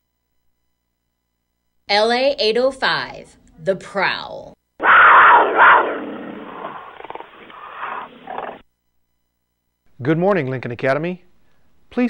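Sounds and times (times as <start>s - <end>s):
big cat roaring and growling: 4.8s - 8.6s.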